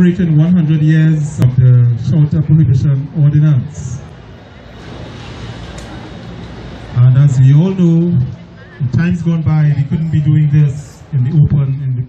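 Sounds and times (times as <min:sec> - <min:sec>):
faint voices: 0:00.0 - 0:12.0
low rumble and hiss: 0:00.0 - 0:12.0.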